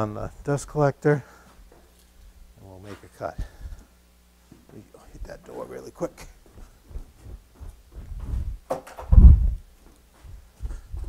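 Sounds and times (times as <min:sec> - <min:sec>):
man speaking: 0:00.0 - 0:01.3, 0:02.6 - 0:03.6, 0:04.7 - 0:06.4
faint low hum: 0:00.0 - 0:11.0.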